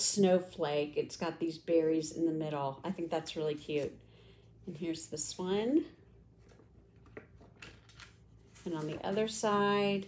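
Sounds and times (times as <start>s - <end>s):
paper rustling: 6.4s - 10.0s.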